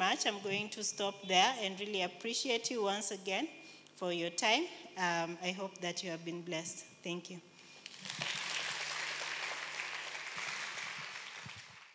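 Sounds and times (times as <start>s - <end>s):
congregation applauding: 7.8s - 11.9s.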